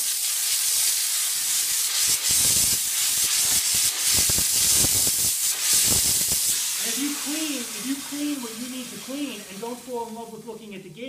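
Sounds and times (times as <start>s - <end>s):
steam cleaner hissing: 0.0s - 10.7s.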